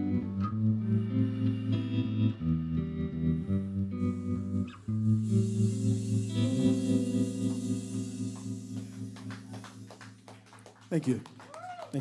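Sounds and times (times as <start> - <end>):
blues band playing: 0.0 - 10.7.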